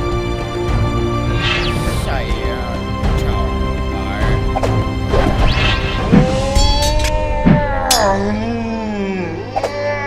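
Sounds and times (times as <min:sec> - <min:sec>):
action music: 0:00.0 - 0:09.4.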